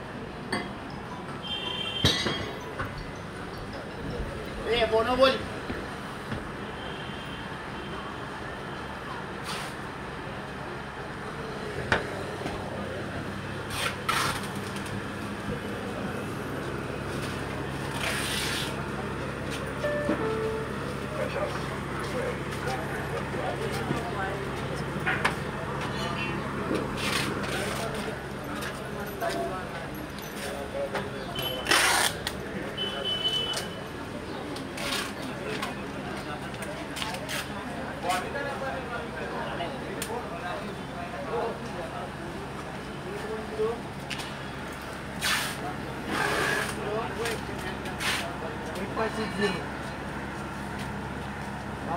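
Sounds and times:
crowd voices: 7.4 - 51.9.

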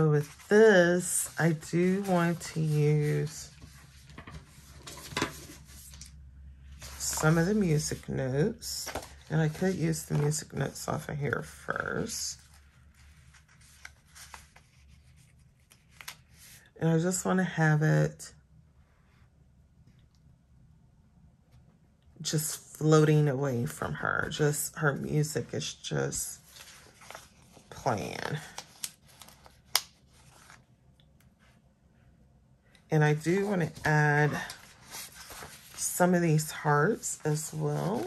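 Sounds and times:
paper sticker sheet rustling: 0.0 - 6.1, 6.8 - 10.8, 12.0 - 16.6, 26.4 - 30.6, 33.2 - 38.0.

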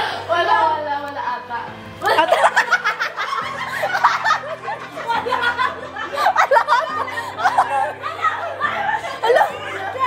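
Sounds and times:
background music with low notes: 0.0 - 10.0
people laughing together: 2.0 - 10.0.

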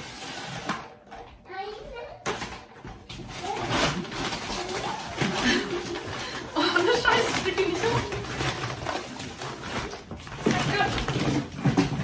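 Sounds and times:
shopping bag contents rustling: 3.1 - 12.0.

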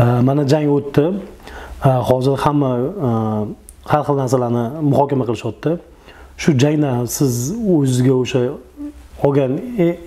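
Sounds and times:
man speaking in a low voice: 0.0 - 10.0.

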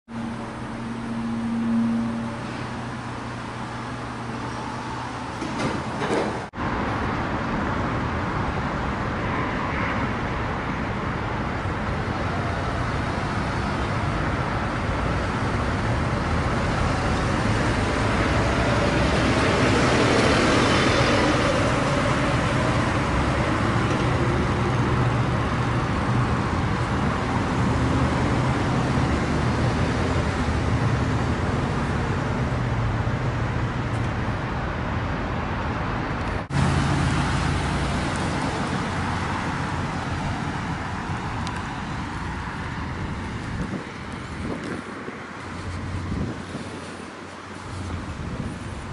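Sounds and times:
road traffic noise: 0.0 - 48.9.

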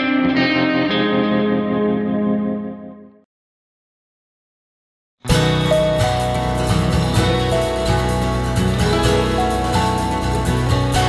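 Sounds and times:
distorted electric guitar chord: 5.3 - 11.0.

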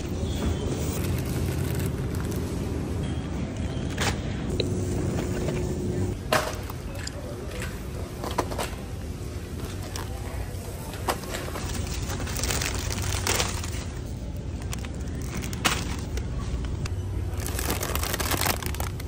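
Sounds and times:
shopping cart rolling: 10.9 - 19.0
packaged groceries knocking and crinkling: 11.2 - 16.8, 17.4 - 19.0.

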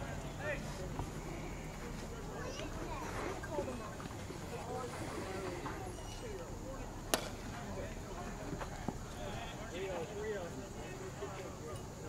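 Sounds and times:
distant voices: 0.0 - 12.0
baseball bat hitting ball: 7.1 - 7.4.

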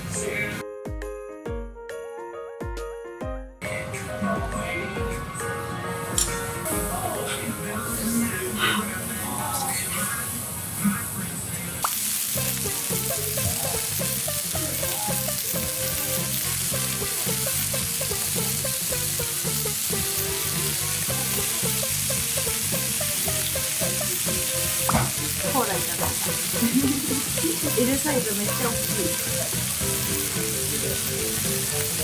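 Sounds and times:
steak sizzling on hot plate: 11.8 - 32.0.

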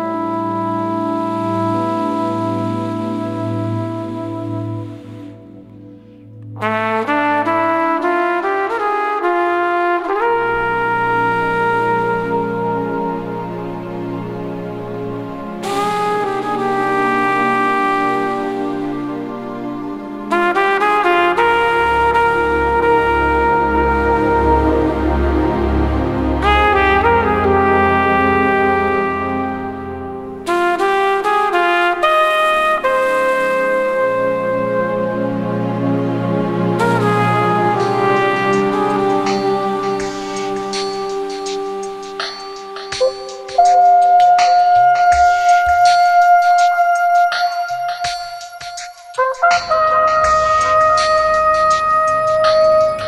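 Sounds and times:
low accompaniment: 0.0 - 53.0
soft sustained backing: 0.0 - 53.0
solo trumpet jazz ballad: 0.0 - 53.0
light percussion: 36.8 - 53.0.

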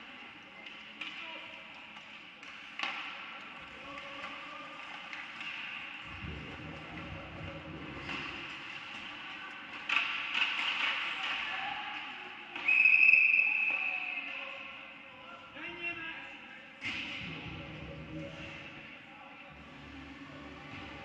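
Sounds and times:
stick hitting puck: 9.8 - 11.5.

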